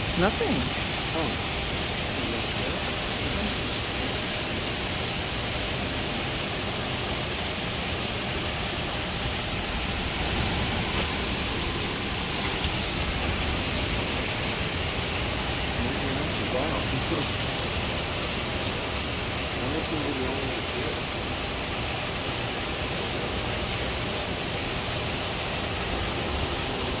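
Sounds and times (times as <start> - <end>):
torrential rain on pavement: 0.0 - 27.0.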